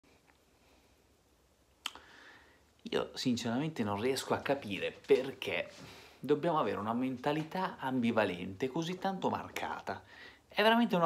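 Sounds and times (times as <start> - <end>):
finger snap: 1.8 - 2.1.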